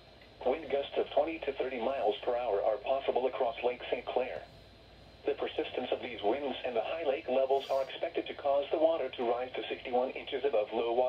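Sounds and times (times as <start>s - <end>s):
automated computer voice speaking: 5.3s - 11.0s.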